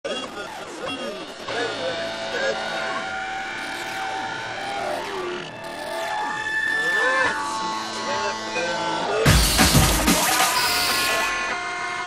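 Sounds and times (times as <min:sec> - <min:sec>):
warped indistinct voices: 0:00.1 - 0:12.0
held electronic tones: 0:00.8 - 0:11.6.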